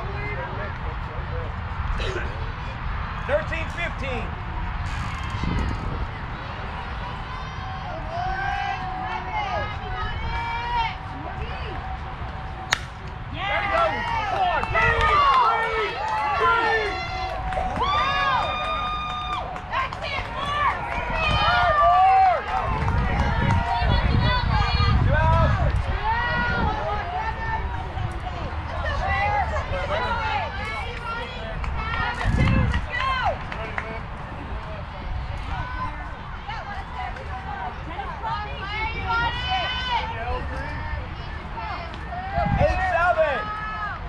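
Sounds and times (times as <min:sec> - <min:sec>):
people shouting and cheering: 0:01.8 - 0:44.0
bat hitting ball: 0:12.6 - 0:13.2.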